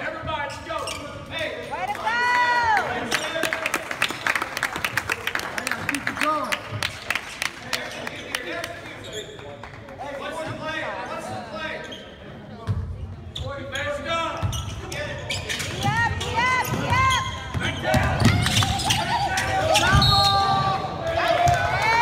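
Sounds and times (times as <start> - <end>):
sneakers squeaking: 0.0 - 1.8, 7.8 - 9.7, 11.6 - 20.9.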